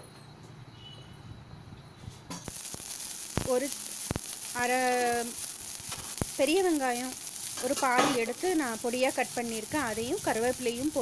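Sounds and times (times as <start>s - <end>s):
oil sizzling with pops: 2.3s - 11.0s.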